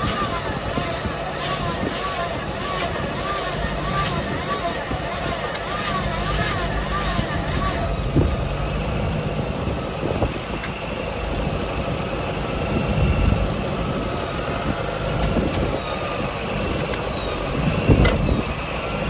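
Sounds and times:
bale wrapper spinning bale: 0.0 - 8.7
tractor engine running: 0.0 - 19.0.

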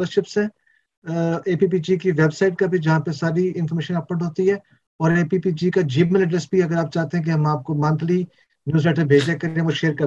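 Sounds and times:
man talking over video call: 0.0 - 10.0.

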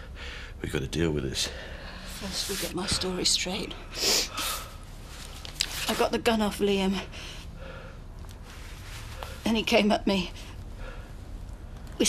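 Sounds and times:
low room hum: 0.0 - 12.0
soft breath: 7.1 - 9.5, 10.3 - 11.5.

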